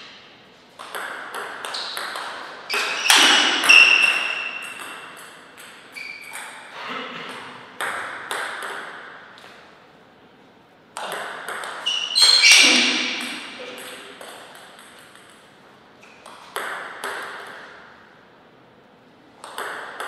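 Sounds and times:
table tennis ball clicking: 19.4 - 20.0.

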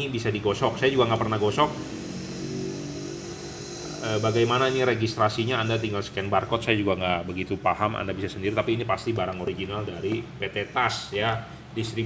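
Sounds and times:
steady droning hum: 0.0 - 12.0.

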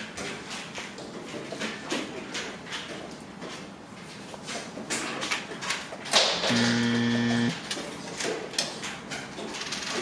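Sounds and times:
steady buzzing tone: 6.5 - 7.6.

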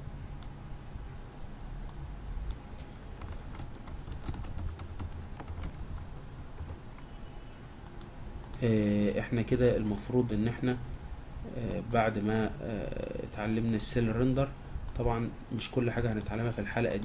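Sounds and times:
steady low hum: 0.0 - 17.0
keyboard typing: 2.5 - 7.1, 16.0 - 17.0.

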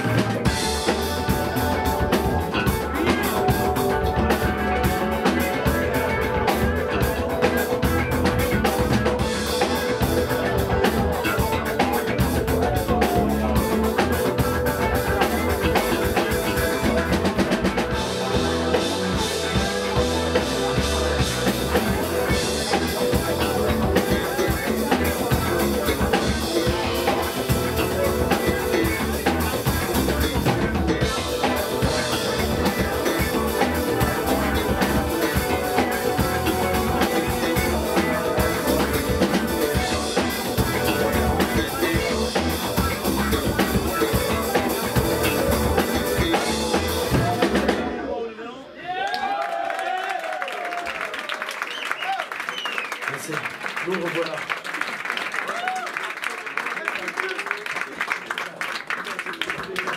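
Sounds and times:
drum kit steady beat: 0.0 - 48.1
live band playing: 0.0 - 48.7.

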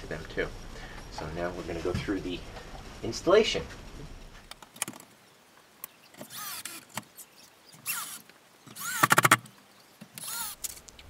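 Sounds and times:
drill clicks: 6.2 - 7.1, 7.8 - 9.5, 10.1 - 11.0
cordless drill motor whine: 6.3 - 6.8, 7.8 - 9.4, 10.2 - 10.6.

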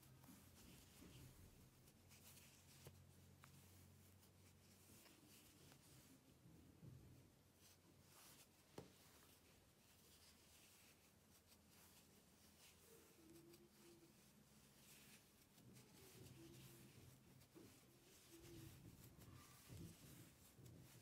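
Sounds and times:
yarn rubbing on crochet hook: 7.6 - 21.0.

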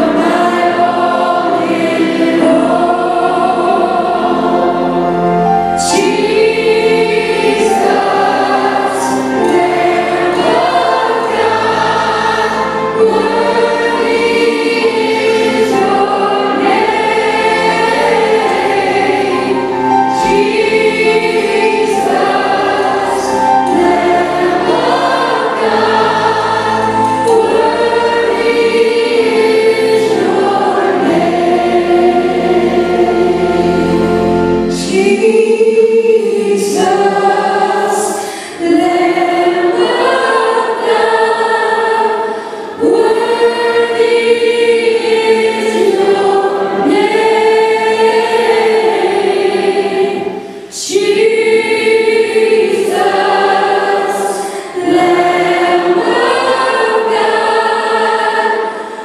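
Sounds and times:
group singing worship song: 0.0 - 59.0
musical accompaniment: 0.0 - 59.0.

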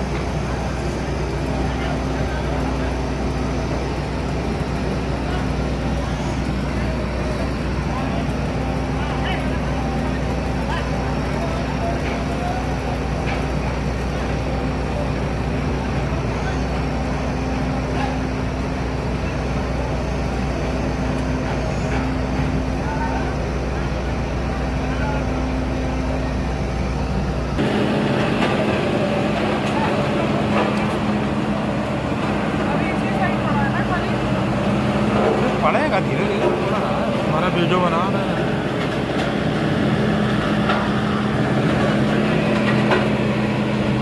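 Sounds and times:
diesel engines running: 0.0 - 44.0.

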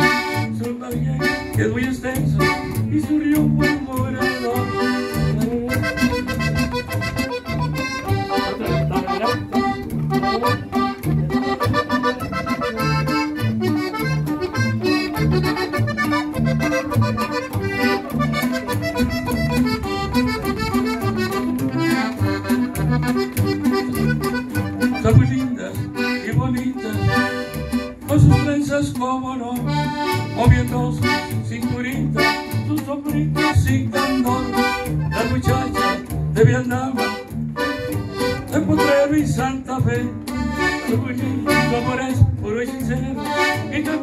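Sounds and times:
repeating bass beat: 0.0 - 28.6, 29.8 - 42.4
button accordion melody: 0.0 - 44.0
guitar accompaniment: 0.0 - 44.0.

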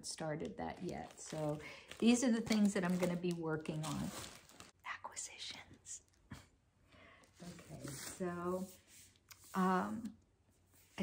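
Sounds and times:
woman whispering: 4.8 - 6.0.

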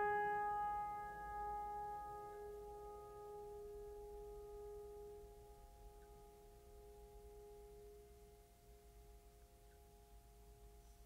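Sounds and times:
musical note ringing: 0.0 - 5.2.

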